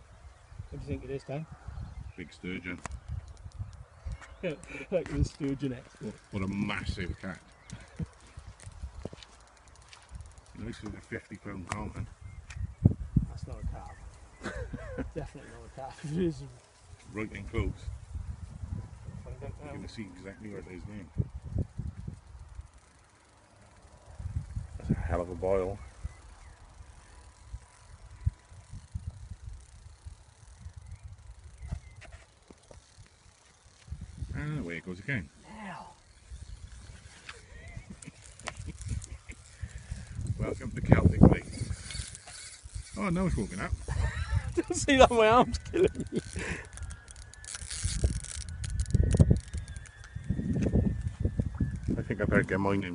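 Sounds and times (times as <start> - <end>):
wind buffeting microphone: 0.0 - 22.8, 24.0 - 33.0, 33.7 - 34.6, 36.0 - 52.9
fishing reel ticking: 2.4 - 12.4, 19.3 - 52.9
sharp clicks: 2.6 - 6.6, 11.6 - 12.7, 45.6 - 50.8.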